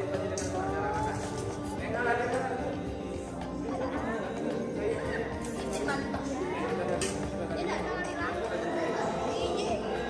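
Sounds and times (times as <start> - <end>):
background music: 0.0 - 10.0
people chattering: 0.0 - 10.0.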